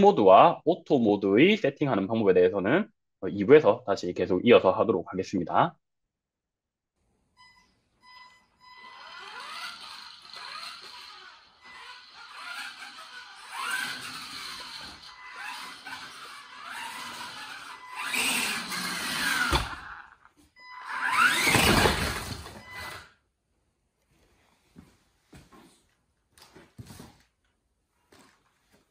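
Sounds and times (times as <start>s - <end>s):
tyre squeal: 7.5s - 23.1s
toy car motor whine: 8.6s - 23.1s.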